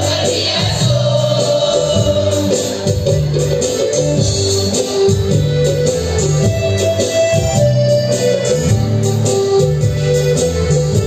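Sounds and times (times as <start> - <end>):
electronic keyboard organ chords: 0.0 - 11.0.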